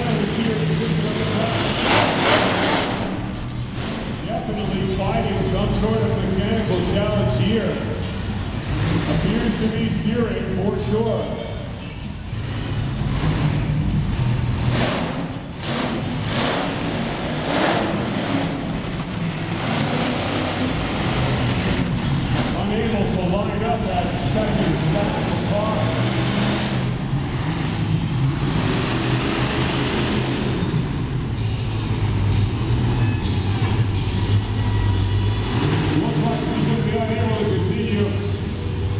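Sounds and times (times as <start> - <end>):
monster truck engine revving: 0.0 - 38.9.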